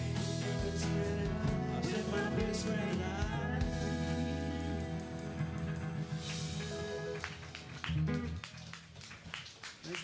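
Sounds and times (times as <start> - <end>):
live band playing: 0.0 - 9.4.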